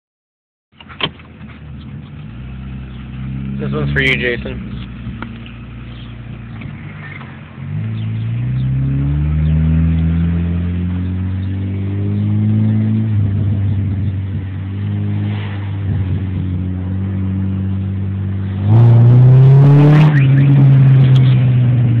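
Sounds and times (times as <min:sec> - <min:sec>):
car engine accelerating: 0:00.8 - 0:22.0.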